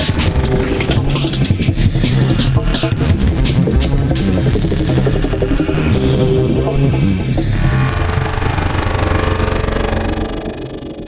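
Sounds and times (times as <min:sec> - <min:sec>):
electronic drum and bass music: 0:00.0 - 0:10.6.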